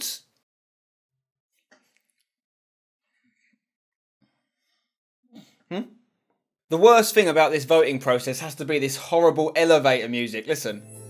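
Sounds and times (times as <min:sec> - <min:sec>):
man saying hmm: 0:05.4 - 0:06.0.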